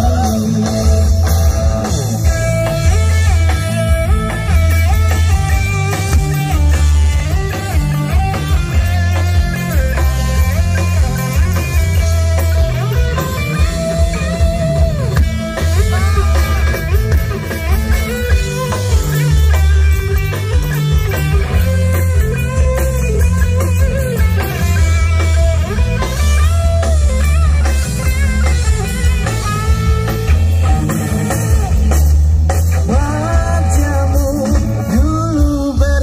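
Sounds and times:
bass guitar: 0.0s - 36.0s
drum kit: 0.0s - 36.0s
electric guitar lead with bends: 0.0s - 36.0s.

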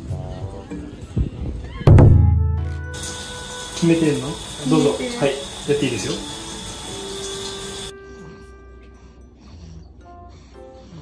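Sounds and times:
background music: 0.0s - 11.0s
loud deep ringing thud: 1.9s - 2.9s.

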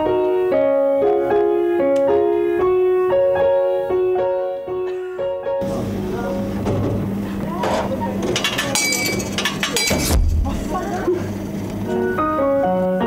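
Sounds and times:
vending machine motor hum: 5.6s - 12.9s.

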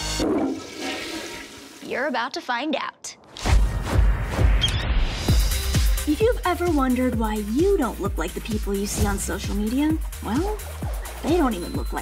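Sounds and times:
toilet flushing: 0.0s - 2.0s.

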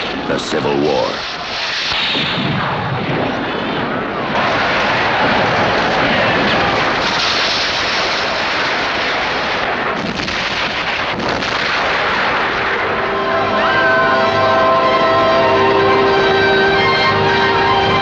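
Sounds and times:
cannon fire: 1.1s - 13.1s
rifle fire: 1.2s - 12.9s.

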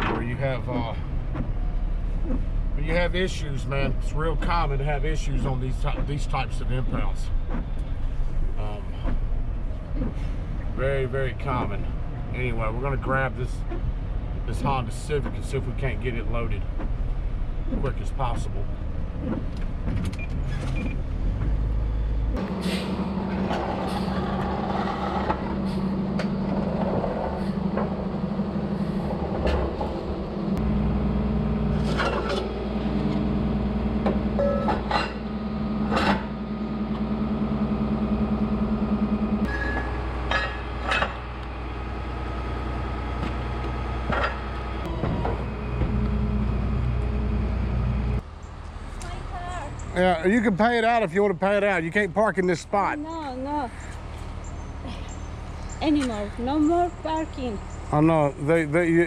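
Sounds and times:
tow truck engine running: 0.0s - 59.0s
metal clanks and knocks: 31.8s - 32.6s, 34.0s - 37.0s, 39.4s - 41.3s.

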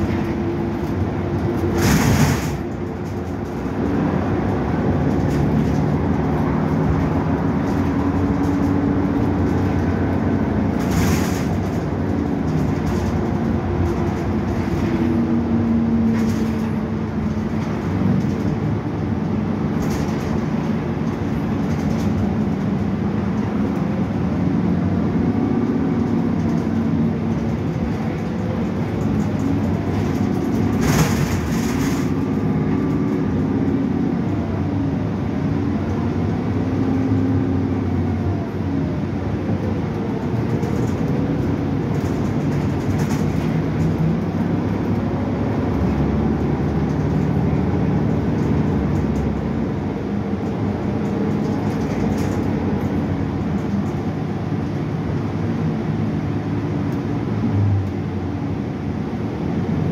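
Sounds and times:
bus engine droning: 0.0s - 59.9s
short clatters: 26.1s - 33.1s.

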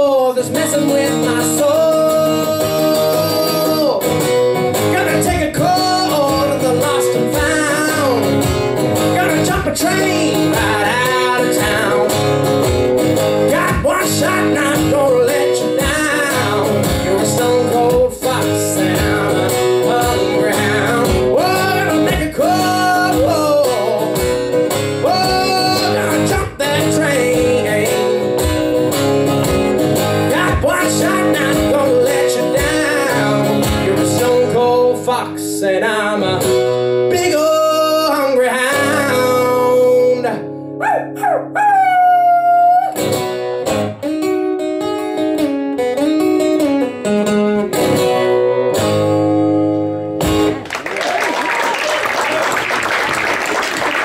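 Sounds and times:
man singing: 0.0s - 28.7s, 30.0s - 43.0s
strummed acoustic guitar: 0.0s - 41.6s, 42.7s - 50.7s.

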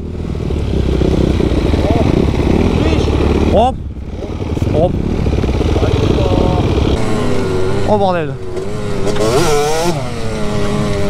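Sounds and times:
motocross bike engines idling: 0.0s - 9.3s
motorbike engine revving away: 0.0s - 11.0s.

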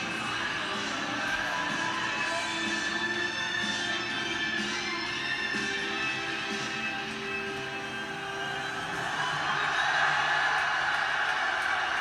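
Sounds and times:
music through television speakers: 0.0s - 12.0s
crowd cheering: 8.6s - 12.0s.

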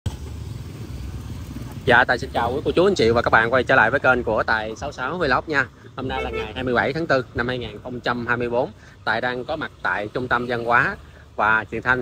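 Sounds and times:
motorbikes and scooters passing: 0.1s - 12.0s.

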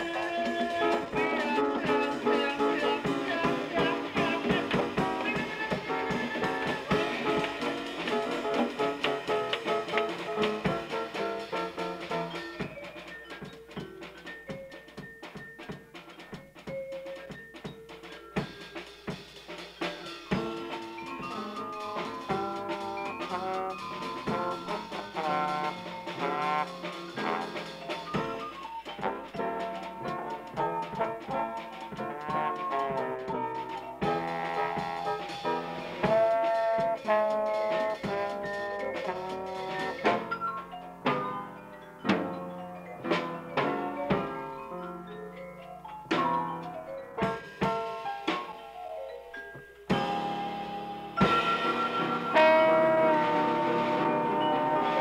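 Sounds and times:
drum strokes: 0.0s - 45.0s, 46.0s - 48.7s, 49.8s - 55.0s
small jazz band: 0.0s - 55.0s.

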